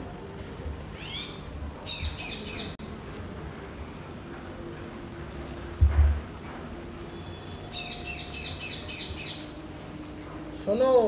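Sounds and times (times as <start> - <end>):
bird chirping: 0.2 - 3.2, 5.6 - 10.1.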